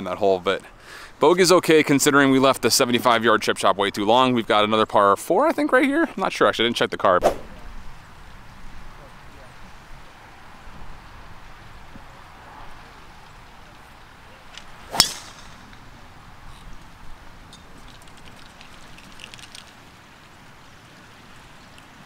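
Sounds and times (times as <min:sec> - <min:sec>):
golf ball struck with a crack: 0:14.5 - 0:15.9.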